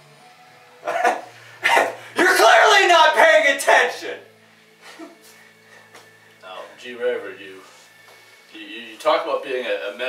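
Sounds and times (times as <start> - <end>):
man laughing loudly: 0.8 - 2.0.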